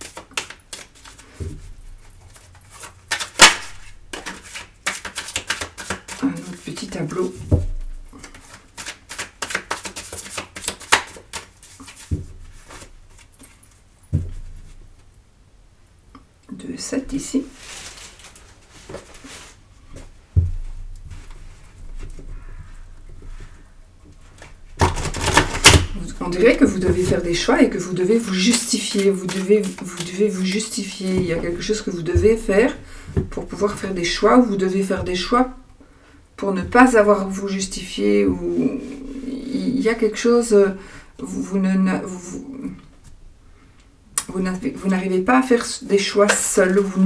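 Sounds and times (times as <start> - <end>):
cards being shuffled by hand: 0.0 - 7.4, 8.2 - 13.6, 24.4 - 34.4.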